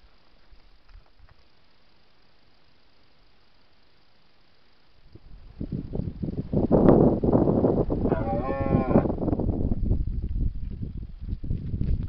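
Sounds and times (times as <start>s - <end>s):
deer stag calling: 8.1s - 9.1s.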